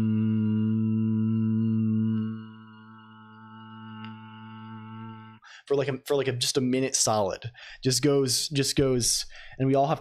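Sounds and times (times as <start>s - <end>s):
man humming low drone: 0.0s - 5.4s.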